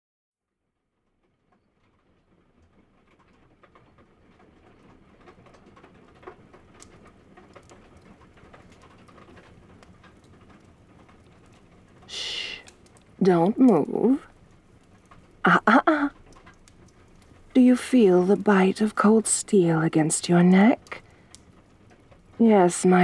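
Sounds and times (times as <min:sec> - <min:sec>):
fireplace crackles: 0:00.5 - 0:23.0
rain patter: 0:00.9 - 0:23.0.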